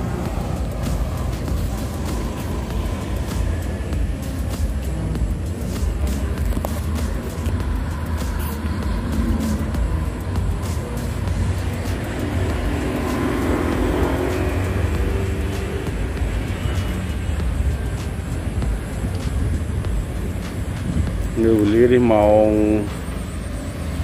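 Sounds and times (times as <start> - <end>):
motor vehicle passing: 0.0 - 24.0
road traffic rumble: 0.0 - 24.0.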